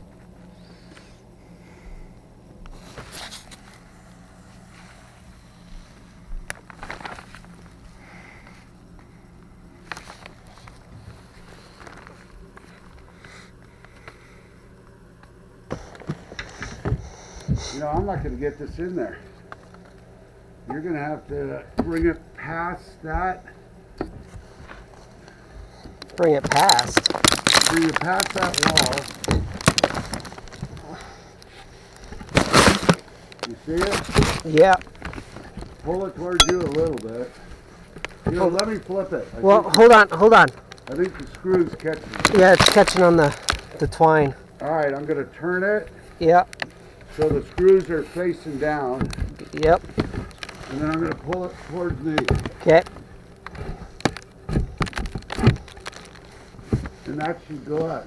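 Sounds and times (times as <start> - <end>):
steady low hum: 0.0 - 58.0
rustling of plastic sheeting: 5.8 - 8.0, 9.8 - 13.0, 26.0 - 58.0.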